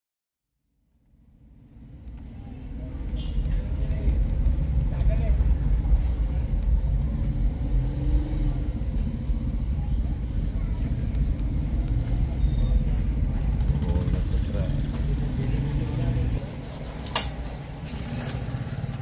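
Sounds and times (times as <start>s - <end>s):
traffic and motorcycles rumbling: 0.9s - 19.0s
faint voices: 2.2s - 16.9s.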